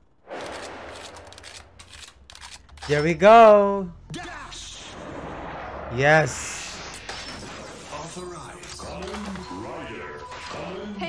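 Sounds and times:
sharp clicks and ticks: 0.3 - 3.1.

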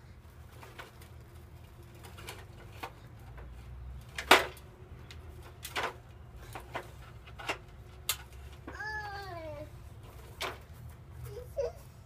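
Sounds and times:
toy truck clicking on gravel: 0.4 - 9.4.

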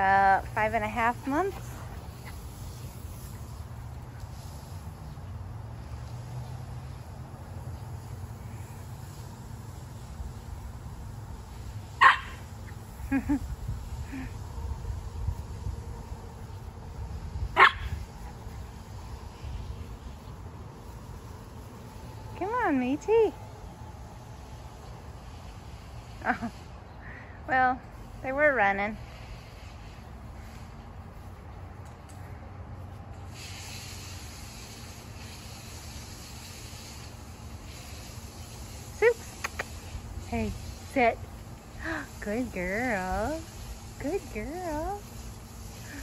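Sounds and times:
hiss: 1.1 - 22.4, 24.0 - 30.9, 33.2 - 46.0
dog barking sharply: 12.0 - 12.4.

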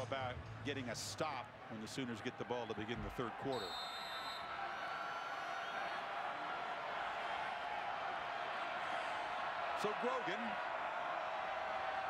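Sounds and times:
stadium crowd din: 0.0 - 12.0.

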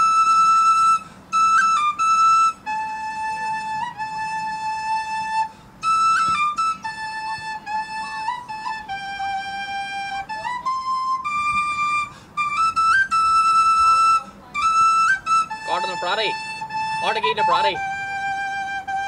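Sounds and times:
flute playing slow melody: 0.0 - 19.0.

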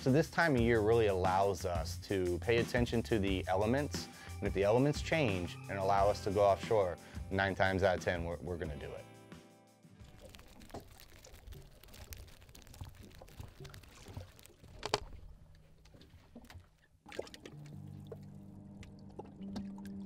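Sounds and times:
small water drips: 10.0 - 20.0
water splashing and trickling: 10.0 - 20.0
low steady hum: 17.1 - 20.0.

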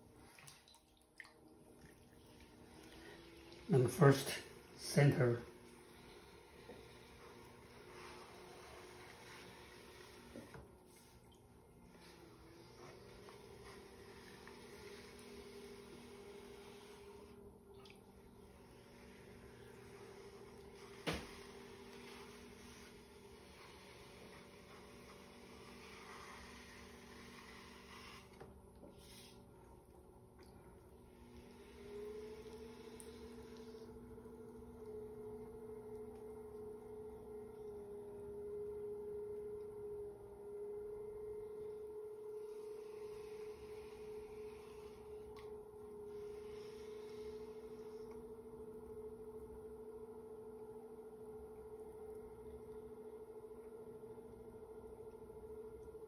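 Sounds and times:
pottery wheel motor whine: 0.0 - 0.6, 1.4 - 56.0.

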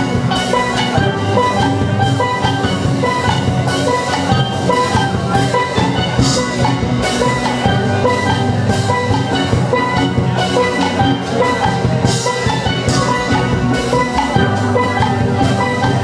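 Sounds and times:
steady drum beat: 0.0 - 16.0
steel pans playing fast notes: 0.0 - 16.0.

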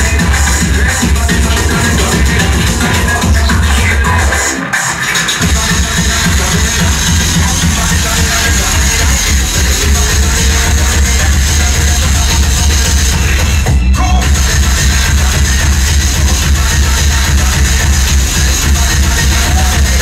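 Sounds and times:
breakcore electronic music: 0.0 - 20.0.

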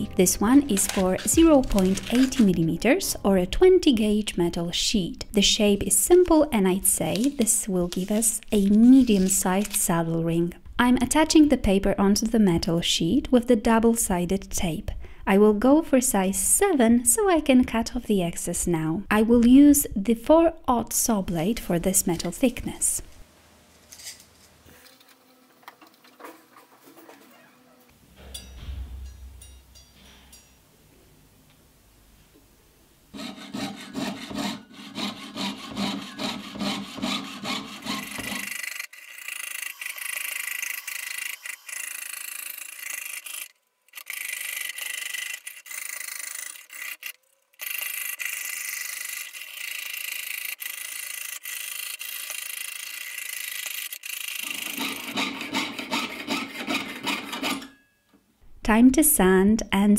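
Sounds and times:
saw rasping through metal sheet: 33.1 - 43.5, 48.1 - 57.8.

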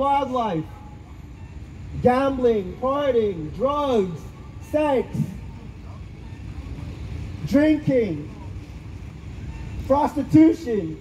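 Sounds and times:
man's voice: 0.0 - 0.9, 1.9 - 8.7, 9.8 - 11.0
city traffic rumble: 0.0 - 11.0.

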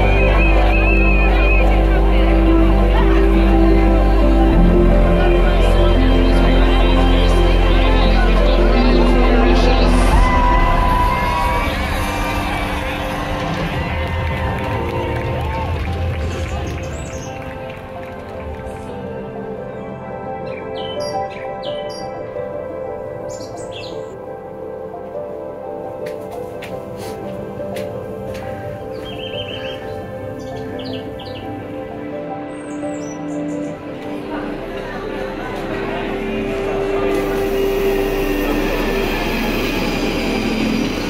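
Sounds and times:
soft music of held tones: 0.0 - 14.4
high-pitched whine: 34.0 - 41.0.

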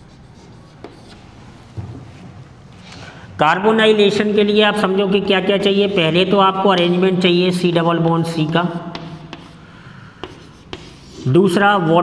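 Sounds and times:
chalk scratching on blackboard: 0.0 - 1.3, 8.9 - 11.6
chalk tapping on blackboard: 0.1 - 1.3, 8.4 - 11.3.

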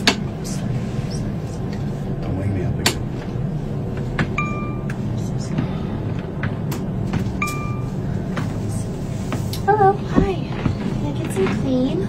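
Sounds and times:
airliner cabin hum: 0.0 - 12.0
call chime ding: 4.4 - 4.9, 7.4 - 7.9.

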